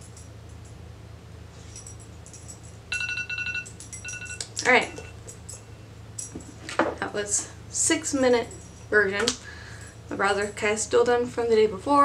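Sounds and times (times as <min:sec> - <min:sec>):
electronic timer alarm beeping: 0:02.9 - 0:05.2.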